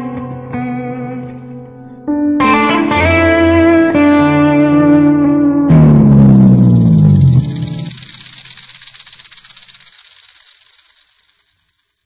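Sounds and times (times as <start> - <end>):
guitar reverb and delay tail: 0.0 - 8.0
overdriven electric guitar note: 2.4 - 8.0.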